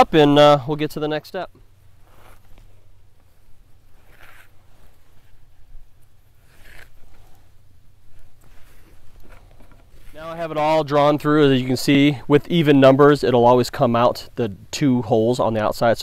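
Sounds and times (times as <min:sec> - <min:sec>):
leather sliding on leather: 0:02.0 - 0:05.7, 0:06.4 - 0:07.5.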